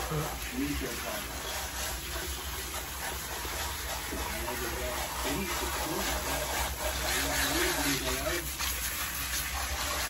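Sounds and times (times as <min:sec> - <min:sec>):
water spraying onto hair: 0:00.0 - 0:10.0.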